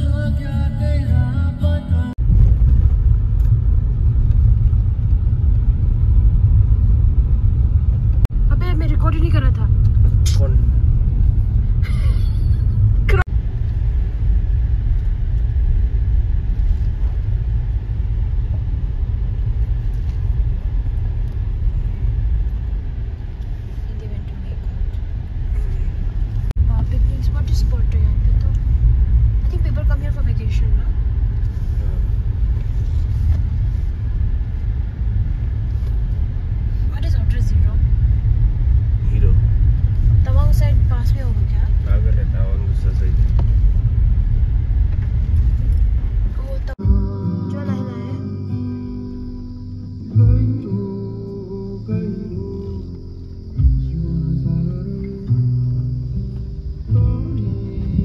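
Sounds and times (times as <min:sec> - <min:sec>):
car driving on dirt road: 0:00.0 - 0:58.0.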